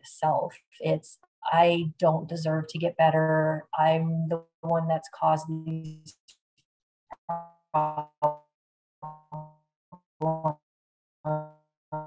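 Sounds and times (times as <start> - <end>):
woman's broken speech fragments: 0.0 - 6.2
people talking: 0.0 - 6.3, 7.8 - 8.0.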